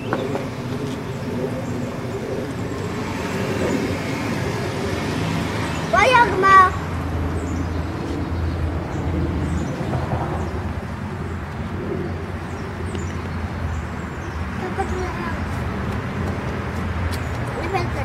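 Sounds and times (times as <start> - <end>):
low traffic rumble: 0.0 - 18.0.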